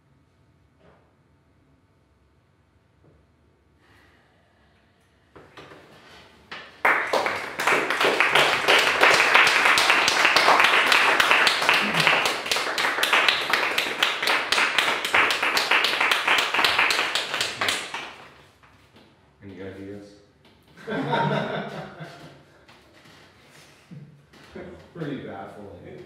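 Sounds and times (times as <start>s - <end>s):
audience applauding: 6.5s - 18.4s.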